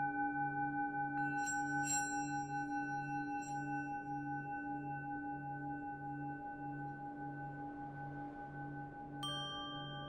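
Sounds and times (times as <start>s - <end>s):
singing bowl ringing: 1.2s - 4.7s, 9.2s - 10.0s.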